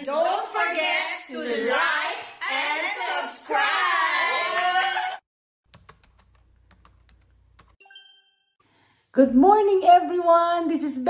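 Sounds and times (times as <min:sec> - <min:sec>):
bell-like ding: 0:07.8 - 0:08.6.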